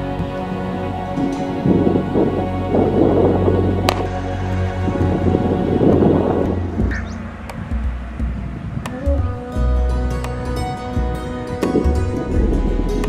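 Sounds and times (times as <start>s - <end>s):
background music of held tones: 0.0s - 13.0s
rumbling rushing noise: 1.4s - 9.4s.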